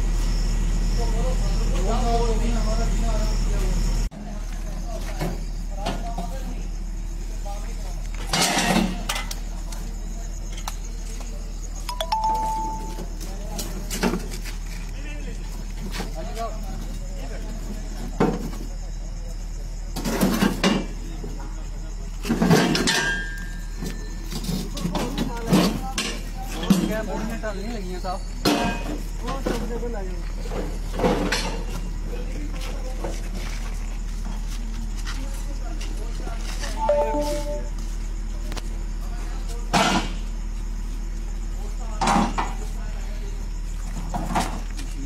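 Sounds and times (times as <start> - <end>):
distant people talking: 0.8 - 34.0, 34.6 - 45.0.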